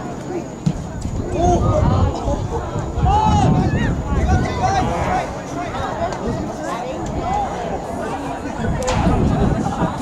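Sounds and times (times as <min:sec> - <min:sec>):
players shouting: 0:01.2 - 0:10.0.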